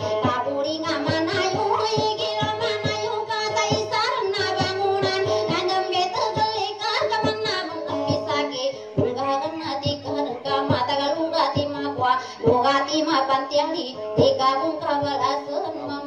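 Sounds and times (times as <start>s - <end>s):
instrumental accompaniment with beat: 0.0s - 16.0s
person singing: 0.0s - 16.0s.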